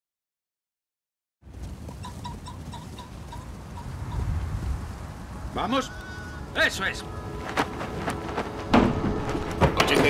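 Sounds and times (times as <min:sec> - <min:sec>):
wind rumble: 0:01.4 - 0:10.0
bird chirping: 0:05.7 - 0:07.4.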